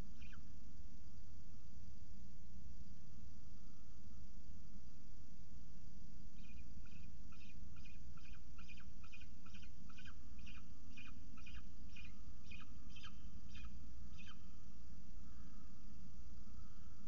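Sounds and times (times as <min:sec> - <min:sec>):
falcon calling: 0:00.2 - 0:00.4.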